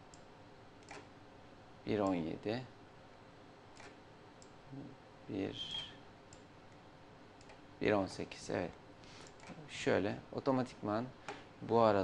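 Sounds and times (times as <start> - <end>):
computer mouse and keyboard clicks: 0.1 - 1.1, 3.7 - 4.6, 9.2 - 9.6.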